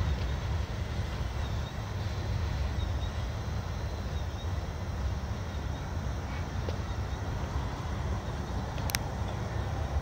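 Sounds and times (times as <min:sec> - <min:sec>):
freight train rumbling on rails: 0:00.0 - 0:10.0.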